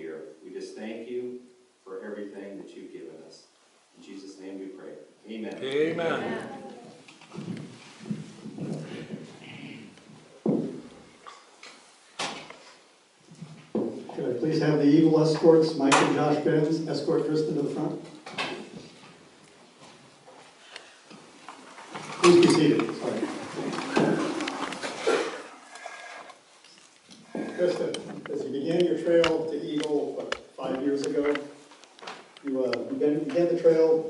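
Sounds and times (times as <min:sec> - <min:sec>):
muffled human voice: 0:05.5 - 0:07.0
footsteps on hard floor: 0:06.8 - 0:11.0.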